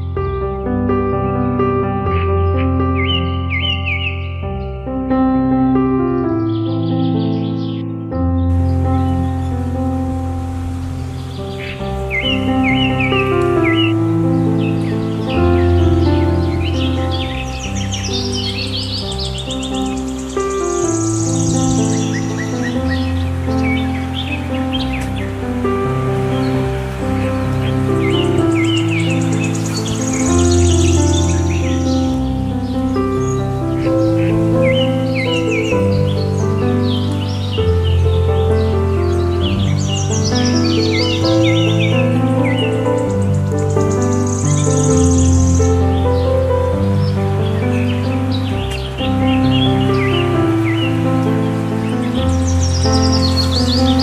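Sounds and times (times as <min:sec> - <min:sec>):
birds chirping and trilling: 0:00.0 - 0:54.0
calm instrumental music: 0:00.0 - 0:54.0.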